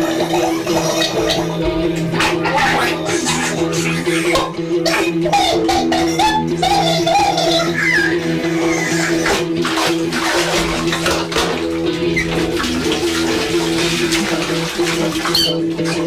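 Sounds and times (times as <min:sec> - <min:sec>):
water sloshing in a bath: 0:00.0 - 0:16.0.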